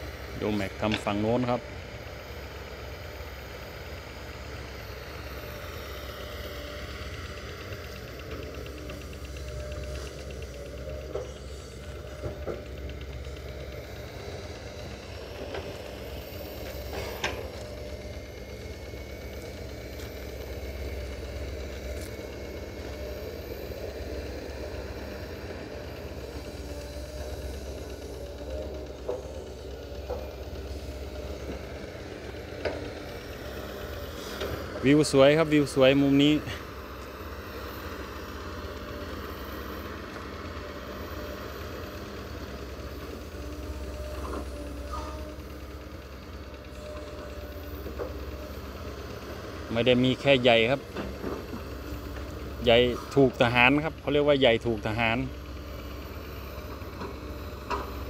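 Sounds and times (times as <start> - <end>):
excavator engine running: 0.0 - 58.0.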